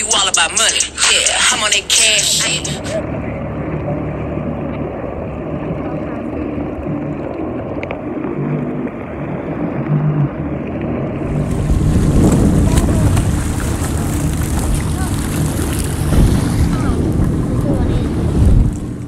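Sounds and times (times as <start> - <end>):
jet ski engine running: 0.7 - 19.0
water rushing past hull: 1.0 - 19.0
wind buffeting microphone: 4.5 - 19.0.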